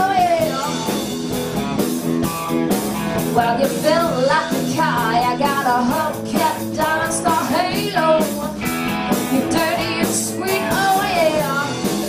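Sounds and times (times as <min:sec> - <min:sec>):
woman singing: 0:00.0 - 0:01.0, 0:03.3 - 0:08.7, 0:09.3 - 0:12.0
live rock band playing: 0:00.0 - 0:12.0.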